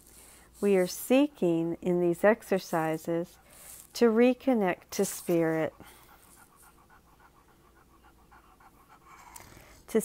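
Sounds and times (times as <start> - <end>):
fast faint panting: 0.0 - 10.0.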